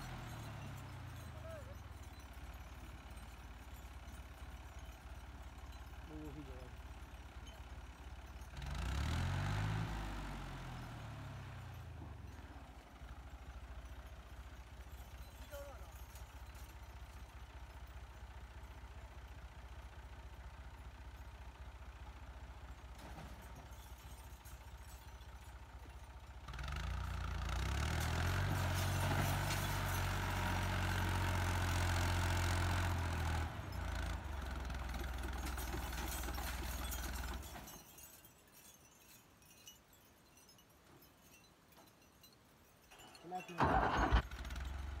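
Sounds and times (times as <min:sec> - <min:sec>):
tractor diesel engine revving: 0:00.0 - 0:23.0, 0:26.2 - 0:37.5, 0:43.6 - 0:45.0.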